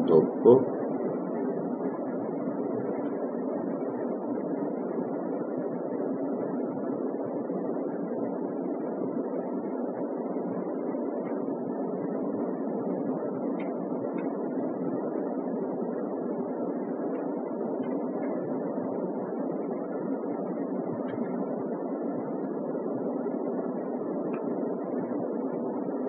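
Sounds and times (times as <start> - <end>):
rushing room hum: 0.0 - 26.0.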